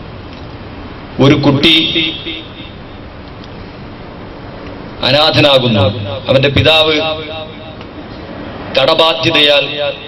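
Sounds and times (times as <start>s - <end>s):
steady background noise: 0.0s - 10.0s
man speaking over microphone: 1.2s - 2.8s, 5.0s - 7.8s, 8.7s - 10.0s.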